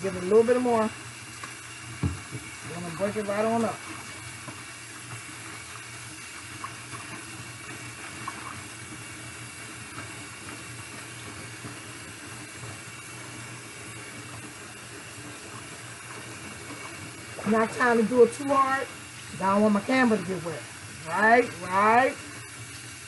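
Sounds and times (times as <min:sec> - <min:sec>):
tap running into sink: 0:02.0 - 0:02.6
faint water splashes: 0:15.5 - 0:22.4.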